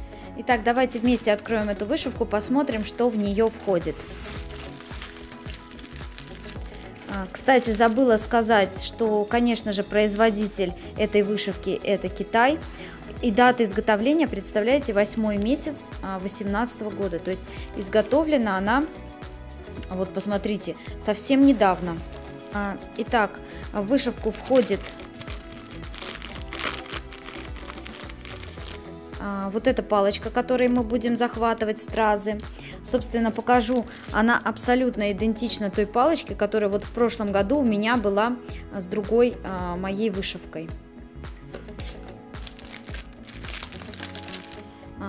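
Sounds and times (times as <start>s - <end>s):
background music with steady beat: 0.0s - 45.0s
plastic package crinkling: 2.6s - 8.3s, 15.0s - 15.7s, 20.8s - 22.8s, 24.0s - 28.9s, 33.6s - 34.2s, 41.8s - 44.7s.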